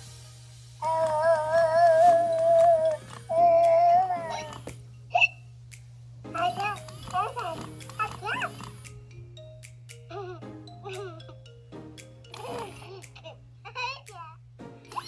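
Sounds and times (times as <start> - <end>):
background music: 0.0 - 15.0
doll's electronic baby voice: 0.8 - 5.4, 6.3 - 8.9, 9.9 - 11.5, 12.3 - 15.0.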